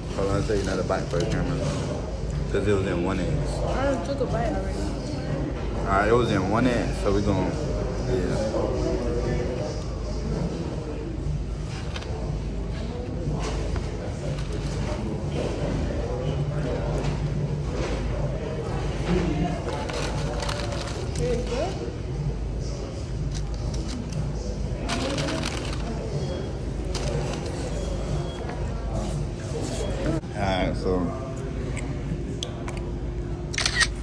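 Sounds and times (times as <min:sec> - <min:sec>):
indistinct chatter: 0:00.0 - 0:34.0.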